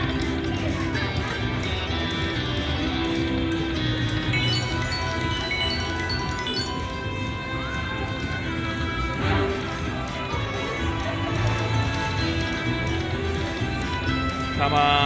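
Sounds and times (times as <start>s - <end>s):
galloping hoofbeat effects: 0.0s - 15.0s
electronic game music: 4.2s - 9.6s
bright chimes: 4.3s - 7.6s.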